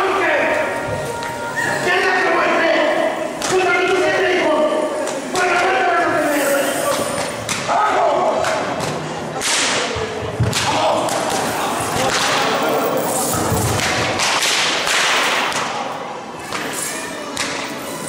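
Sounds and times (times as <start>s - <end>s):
whips cracking: 9.4s - 9.9s, 10.5s - 15.9s.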